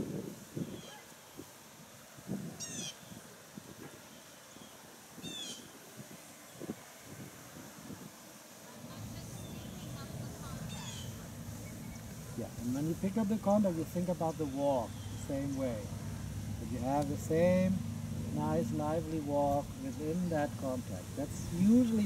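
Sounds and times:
low steady rumble: 0:06.1 - 0:22.0.

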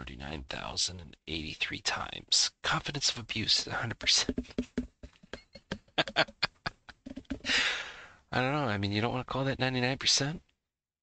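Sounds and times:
man laughing: 0:05.4 - 0:07.8.

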